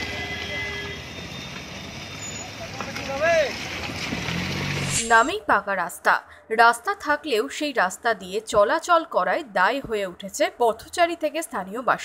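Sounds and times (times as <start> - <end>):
vehicle rumbling on rough road: 0.0 - 5.2.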